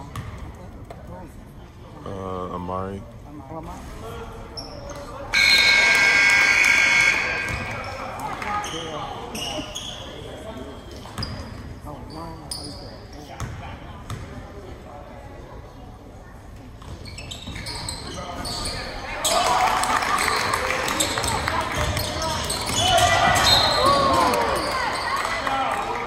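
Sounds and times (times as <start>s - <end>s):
crowd chatter: 0.0s - 26.0s
scoreboard horn: 5.4s - 7.6s.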